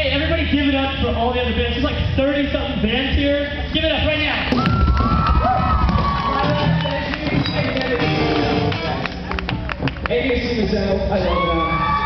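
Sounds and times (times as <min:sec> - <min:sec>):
crowd cheering: 0:04.5 - 0:10.4, 0:11.0 - 0:12.0
live rock band playing: 0:06.3 - 0:09.2.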